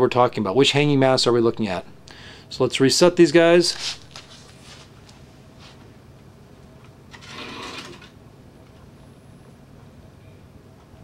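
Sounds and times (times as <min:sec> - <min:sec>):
cart wheels rolling on metal track: 0:07.1 - 0:08.1.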